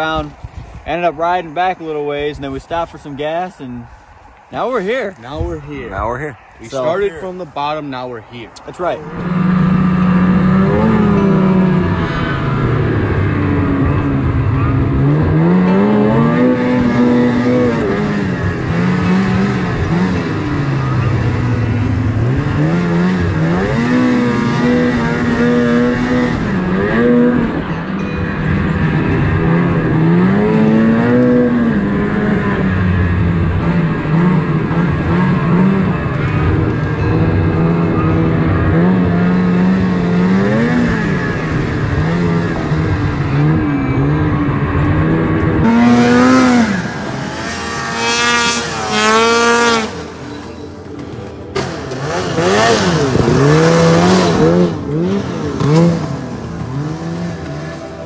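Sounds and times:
snowmobile engine running: 0:06.6 - 0:58.0
snowmobile revving hard: 0:09.0 - 0:27.7, 0:28.8 - 0:50.2, 0:51.6 - 0:58.0.

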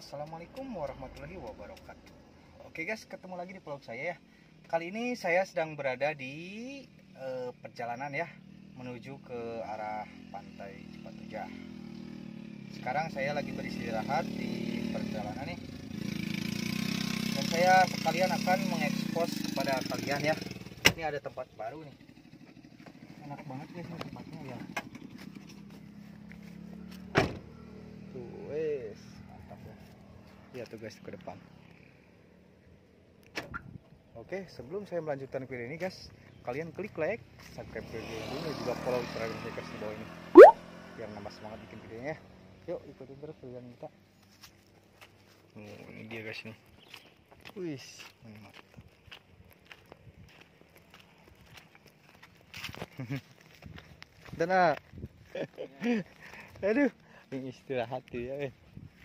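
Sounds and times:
footsteps on dirt path: 0:24.9 - 0:27.1, 0:44.2 - 0:57.3, 0:58.5 - 0:59.0
van door slamming: 0:27.1 - 0:27.4.

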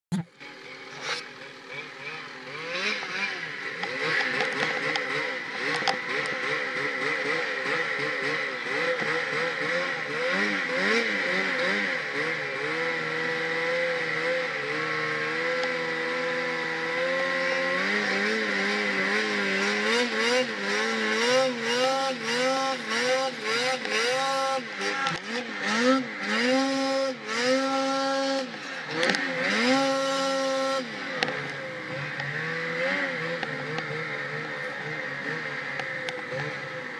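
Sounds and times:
snowmobile engine revving: 0:00.1 - 0:36.9.

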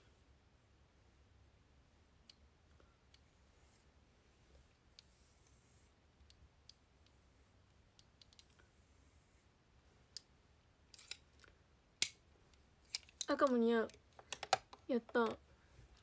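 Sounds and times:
faint clicks and light taps: 0:06.2 - 0:08.7, 0:10.1 - 0:10.4, 0:11.0 - 0:16.0.

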